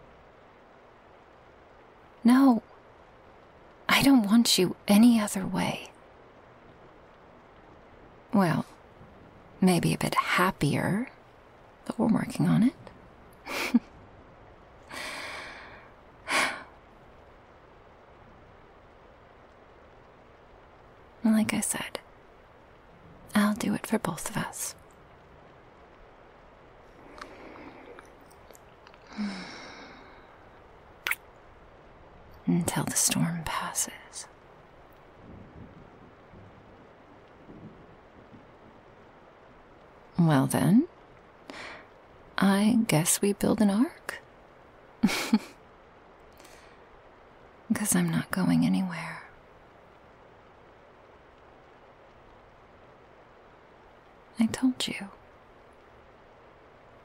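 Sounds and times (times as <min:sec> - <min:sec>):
faint rain hiss: 0:00.0 - 0:57.0
woman exhaling softly: 0:29.1 - 0:30.3.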